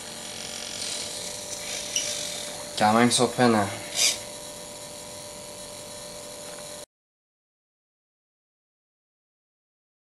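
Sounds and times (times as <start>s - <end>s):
electric buzz with thin whine: 0.0s - 6.9s.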